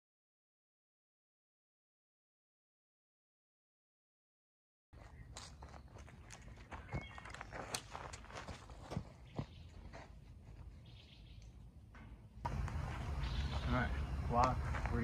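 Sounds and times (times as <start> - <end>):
irregular footsteps: 5.0 - 15.0
low outdoor rumble: 9.7 - 15.0.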